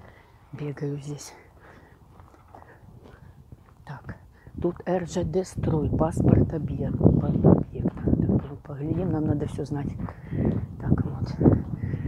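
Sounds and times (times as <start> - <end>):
footsteps on dirt track: 0.0 - 12.0.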